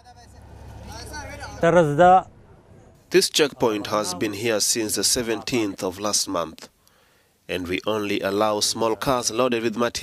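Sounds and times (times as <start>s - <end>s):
low vehicle engine rumble: 0.0s - 4.1s.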